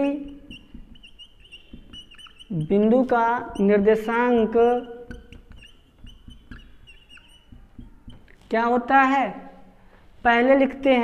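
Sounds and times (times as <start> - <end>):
marker pen squeaking on whiteboard: 0.0 - 8.9.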